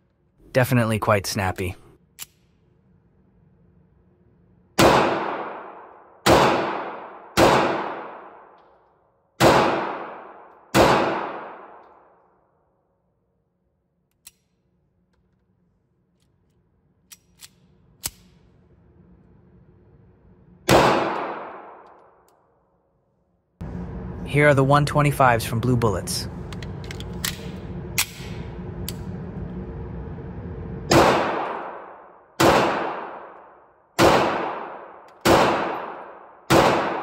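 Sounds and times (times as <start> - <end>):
pistol shots echoing: 4.8 - 8.6, 9.4 - 11.8, 20.7 - 21.9, 30.9 - 33.4, 34.0 - 37.0.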